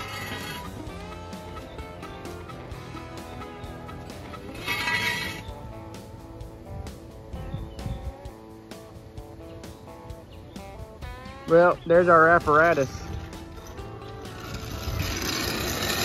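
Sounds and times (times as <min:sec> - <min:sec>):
guitar music: 0:00.0 - 0:16.0.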